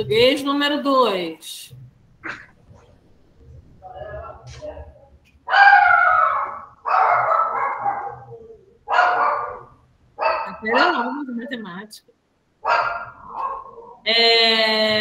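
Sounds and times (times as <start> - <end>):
dog barking: 5.5 - 10.9, 12.6 - 14.0.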